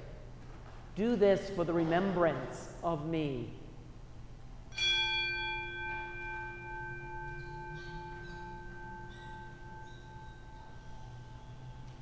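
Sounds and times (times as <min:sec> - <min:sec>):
altar bell ringing: 0:04.7 - 0:12.0.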